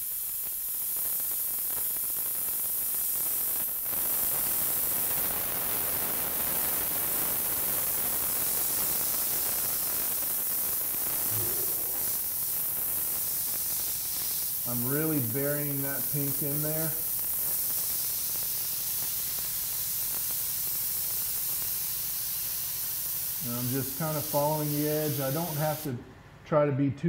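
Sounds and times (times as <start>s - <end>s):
airbrush spraying paint: 0.0s - 25.9s.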